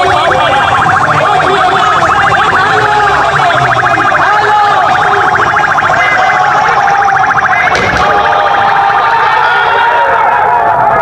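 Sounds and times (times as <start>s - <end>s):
siren-like alarm pulsing: 0.0s - 10.2s
street crowd noise: 0.0s - 11.0s.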